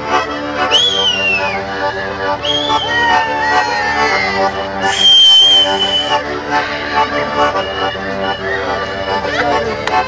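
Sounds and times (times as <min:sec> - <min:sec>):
folk dance music: 0:00.0 - 0:10.0
loud shrill whistle: 0:00.7 - 0:01.6, 0:02.4 - 0:06.2.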